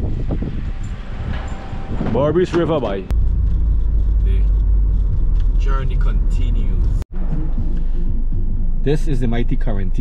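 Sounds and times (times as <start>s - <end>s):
wind rushing over microphone: 0.0s - 7.0s
car road noise: 0.0s - 10.0s.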